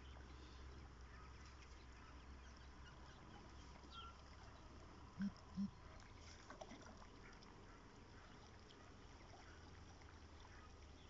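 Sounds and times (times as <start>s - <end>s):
faint pond ambience: 0.0s - 11.0s.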